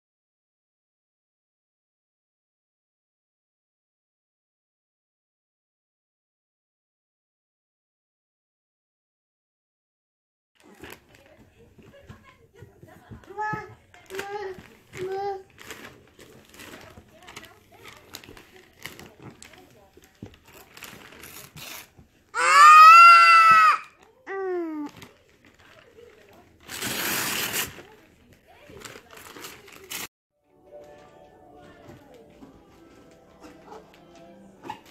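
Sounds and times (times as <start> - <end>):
wrapping paper crinkling and tearing: 10.6 - 11.6, 13.4 - 22.0, 23.9 - 30.1
long rip of paper: 21.2 - 22.0, 26.6 - 27.8
baby falling cry: 22.4 - 24.0.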